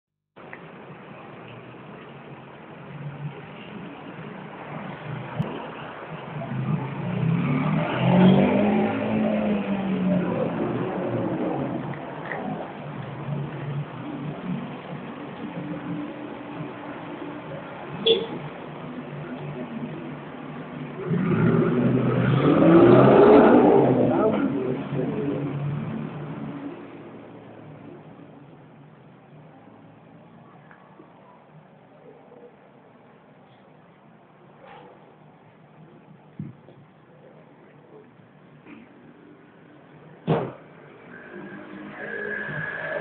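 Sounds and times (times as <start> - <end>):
motorcycle engine revving: 6.4 - 15.1.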